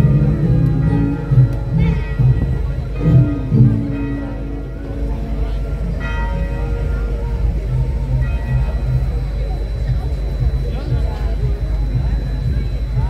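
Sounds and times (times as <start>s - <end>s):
background music: 0.0s - 13.0s
bells ringing: 0.0s - 13.0s
crowd chatter: 0.0s - 13.0s.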